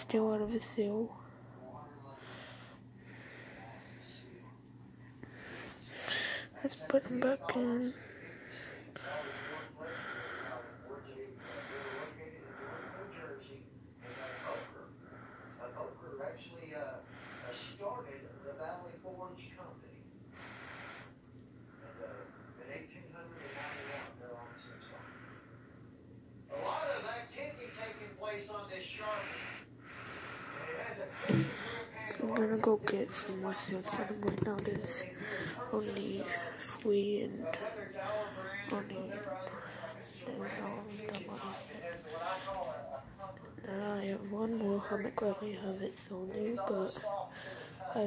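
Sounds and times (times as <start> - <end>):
heavy wheezy nose breathing: 8.0 - 10.8, 23.4 - 25.6, 29.0 - 32.1.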